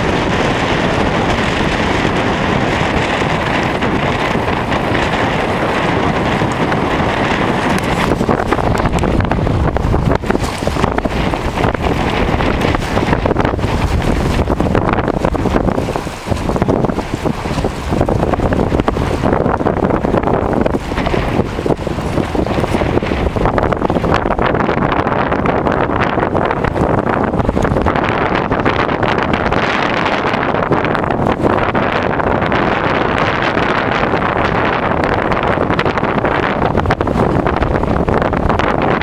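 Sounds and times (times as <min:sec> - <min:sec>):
gusty wind buffeting microphone: 0:00.0 - 0:39.0.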